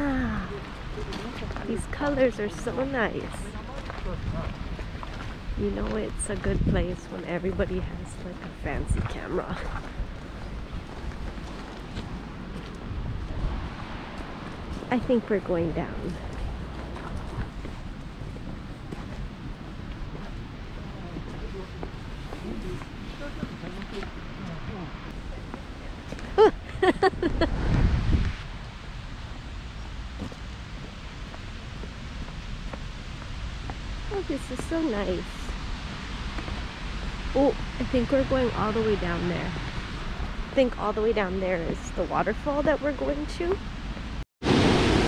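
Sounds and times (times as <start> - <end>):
wind on microphone: 0.0 - 45.0.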